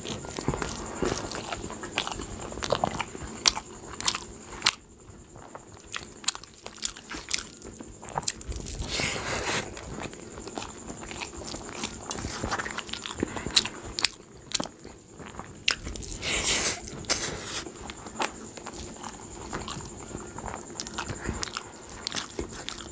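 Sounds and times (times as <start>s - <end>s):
fingers squishing soft rice: 0.1s - 22.9s
wet chewing and lip-smacking: 5.5s - 8.9s, 9.6s - 16.3s, 17.1s - 22.9s.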